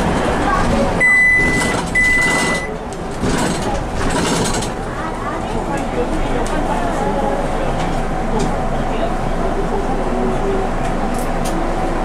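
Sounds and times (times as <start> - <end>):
bus engine and road noise: 0.0 - 12.0
high-pitched electronic beep: 1.0 - 2.7.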